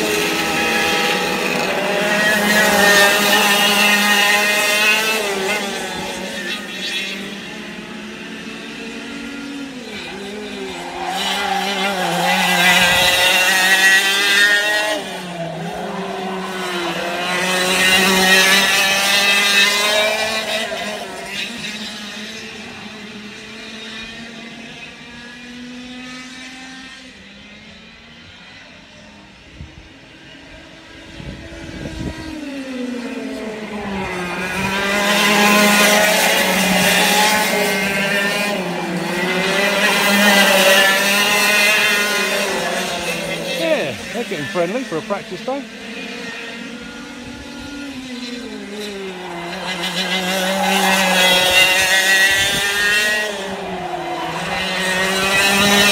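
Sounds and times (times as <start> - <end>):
racing kart engines revving: 0.0 - 55.9.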